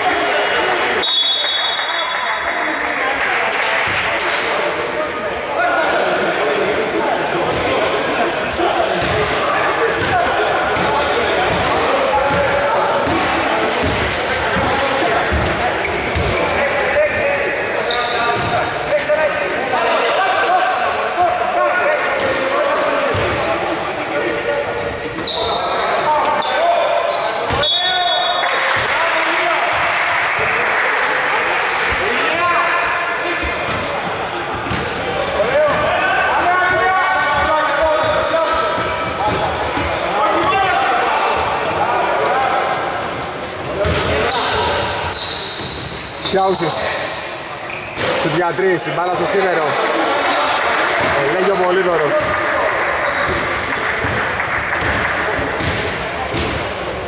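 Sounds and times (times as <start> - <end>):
short high squeaks: 44.3 - 46.5
basketball bouncing on hardwood: 55.6 - 56.6.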